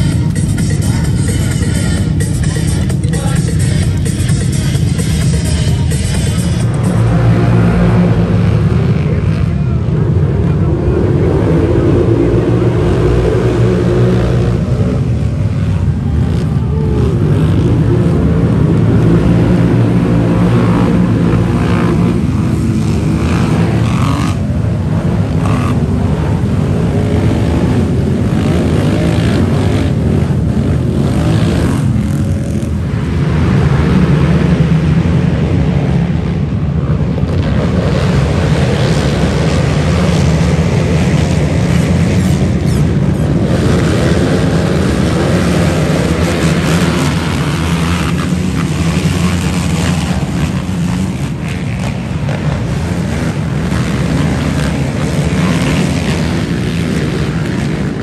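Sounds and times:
quad engines revving: 0:00.0 - 0:58.0.

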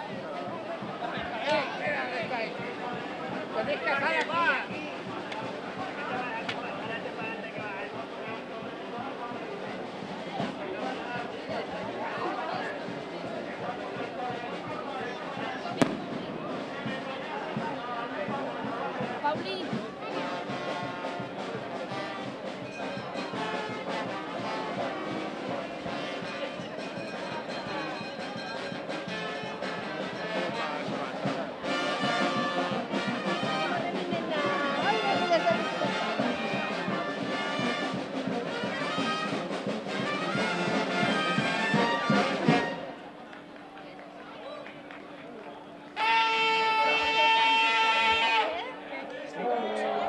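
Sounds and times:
brass band music: 0:09.4 - 0:43.2, 0:45.9 - 0:48.7.

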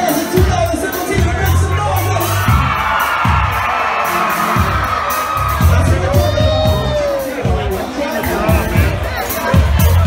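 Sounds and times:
amplified music with bass beat: 0:00.0 - 0:10.0
crowd cheering: 0:01.8 - 0:10.0.

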